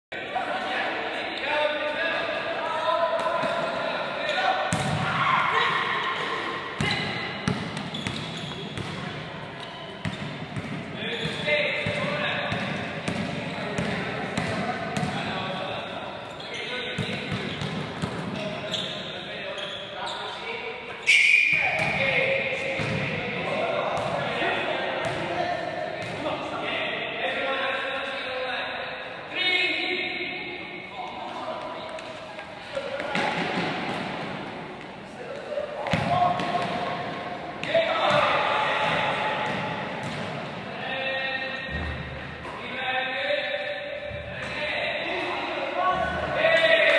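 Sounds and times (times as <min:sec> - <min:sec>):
pupils' voices echoing: 0:00.2 - 0:46.9.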